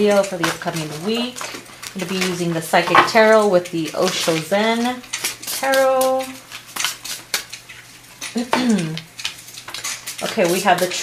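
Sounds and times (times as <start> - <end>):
cards clicking and snapping: 5.0 - 10.8
person humming: 8.4 - 9.1.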